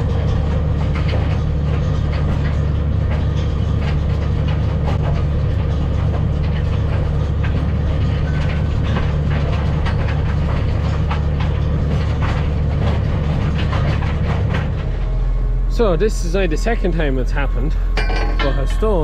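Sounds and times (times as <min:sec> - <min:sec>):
tractor engine running under load: 0:00.0 - 0:19.0.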